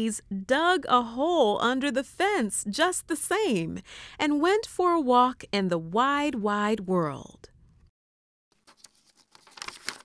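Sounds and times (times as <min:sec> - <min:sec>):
paper page turning: 0:08.5 - 0:10.0.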